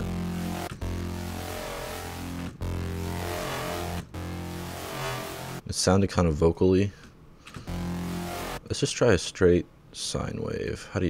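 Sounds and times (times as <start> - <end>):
synthesizer low sustained note: 0.0 - 5.6, 7.6 - 8.7.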